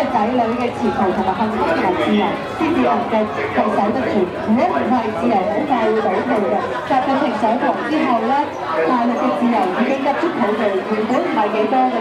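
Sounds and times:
crowd chatter: 0:00.0 - 0:12.0
woman speaking through speaker: 0:00.0 - 0:12.0.

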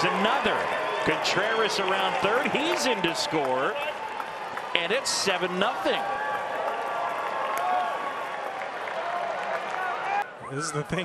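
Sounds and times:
crowd applause: 0:00.0 - 0:10.4.

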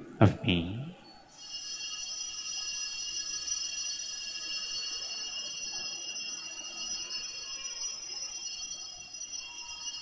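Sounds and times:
altar bells ringing: 0:01.0 - 0:10.0.

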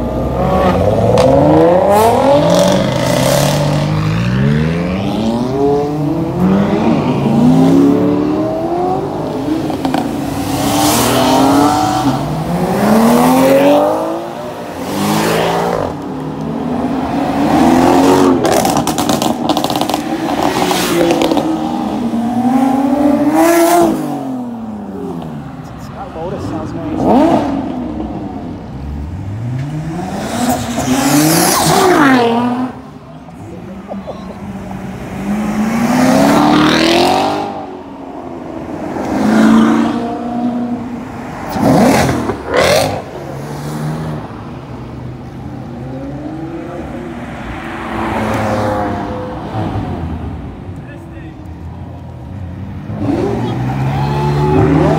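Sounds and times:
sports car engines revving: 0:00.0 - 0:54.9.

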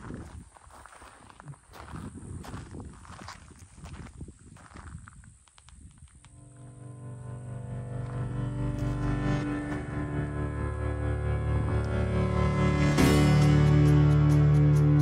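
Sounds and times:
footsteps on gravel: 0:00.0 - 0:06.7, 0:07.9 - 0:10.0
low bowed-string music: 0:06.4 - 0:15.0.

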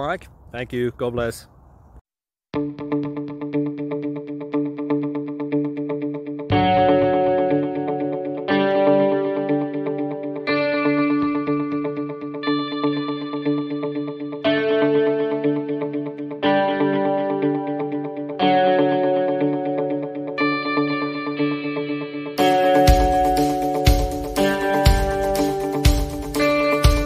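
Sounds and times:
sustained music chords: 0:06.4 - 0:27.0.

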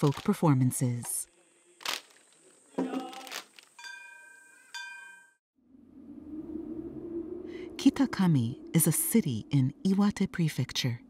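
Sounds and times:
small metal bell ringing: 0:03.8 - 0:05.4
low steady hum: 0:05.6 - 0:11.0.

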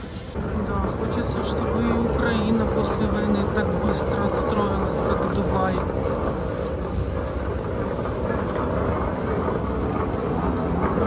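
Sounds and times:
moving walkway rumbling: 0:00.0 - 0:11.0
terminal hall hum: 0:00.0 - 0:11.0.

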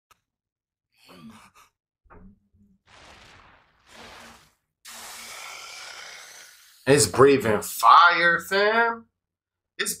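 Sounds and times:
breathy vocal sigh: 0:04.9 - 0:06.8.

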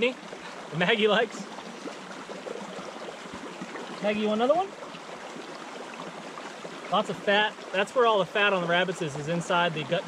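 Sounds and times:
creek water running over rocks: 0:00.0 - 0:10.0.

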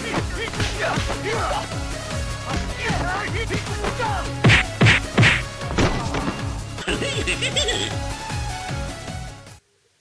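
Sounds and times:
background music: 0:00.0 - 0:09.6
punch sound effects: 0:04.4 - 0:06.2.

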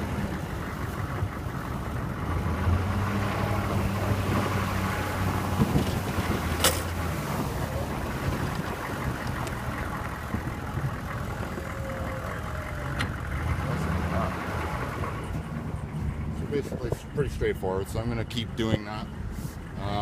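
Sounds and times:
plow blade scraping snow: 0:00.0 - 0:11.6
truck engine running: 0:00.0 - 0:20.0.

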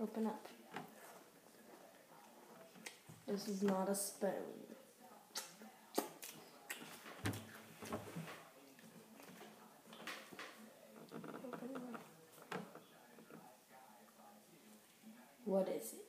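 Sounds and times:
faint voice murmur: 0:05.2 - 0:14.8.

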